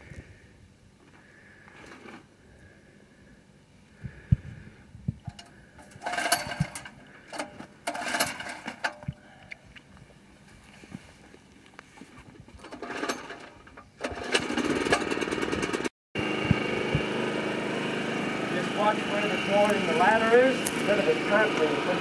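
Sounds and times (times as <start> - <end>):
generator running: 5.2 - 9.0, 12.7 - 22.0
recoil cord cranking: 5.3 - 9.0, 12.6 - 15.9.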